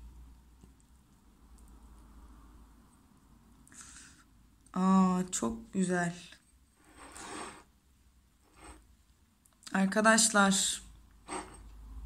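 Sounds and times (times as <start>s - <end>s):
porcelain cup scraping on saucer: 6.7s - 7.7s, 8.4s - 8.9s, 11.2s - 11.7s.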